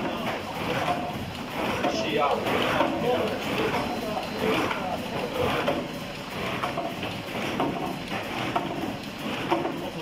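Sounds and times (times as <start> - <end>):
cartoning machine clattering: 0.0 - 10.0.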